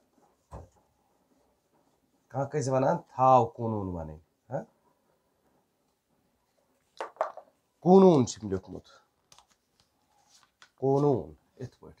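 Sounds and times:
man speaking: 0:02.3 - 0:04.7, 0:07.8 - 0:09.0, 0:10.8 - 0:12.0.

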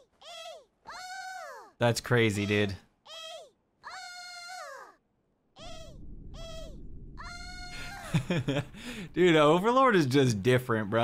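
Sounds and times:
faint low hum: 0:05.6 - 0:10.9.

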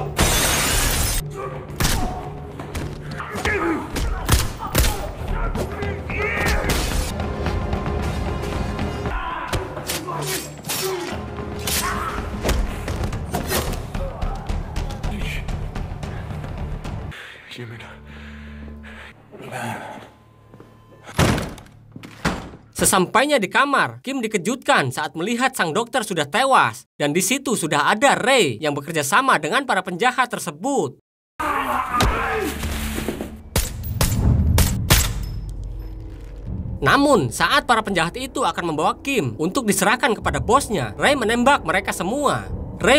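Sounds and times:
glass breaking: 0:00.1 - 0:01.2.

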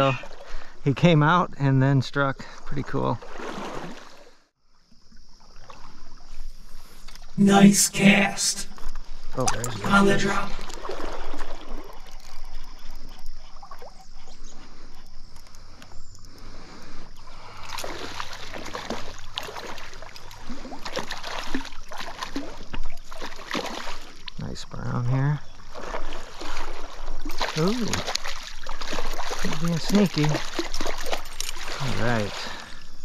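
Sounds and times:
stream water running: 0:02.4 - 0:07.4, 0:08.1 - 0:33.0
splashes and knocks: 0:17.7 - 0:24.3, 0:25.8 - 0:32.6.

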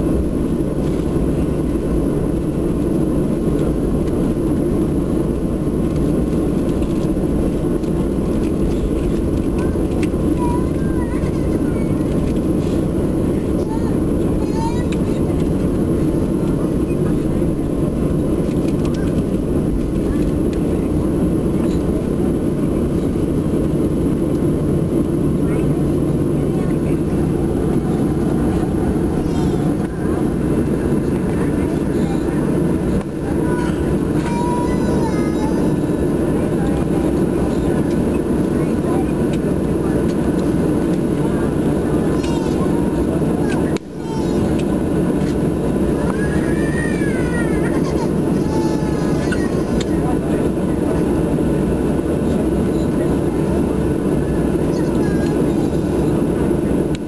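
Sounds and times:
faint passenger voices: 0:00.0 - 0:57.0
jet airliner rumble in cabin: 0:00.0 - 0:57.0.

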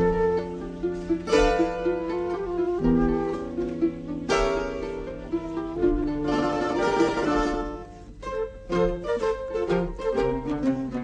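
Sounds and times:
plucked string ensemble melody: 0:00.0 - 0:11.0.

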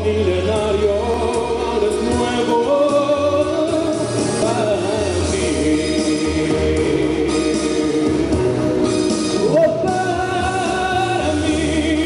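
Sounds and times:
man singing with vibrato: 0:00.0 - 0:12.0
musical accompaniment with bass: 0:00.0 - 0:12.0.

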